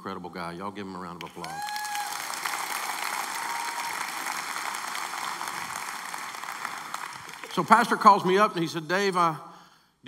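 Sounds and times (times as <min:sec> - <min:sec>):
audience applauding: 0:01.2 - 0:08.2.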